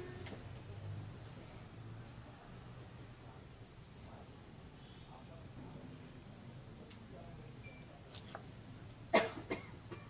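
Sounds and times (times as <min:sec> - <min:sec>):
person coughing: 0:09.2 - 0:10.0.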